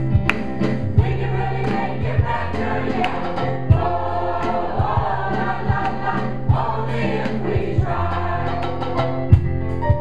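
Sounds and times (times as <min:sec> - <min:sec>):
bass line: 0:00.0 - 0:10.0
drum hits: 0:00.0 - 0:10.0
mixed choir singing: 0:00.9 - 0:09.2.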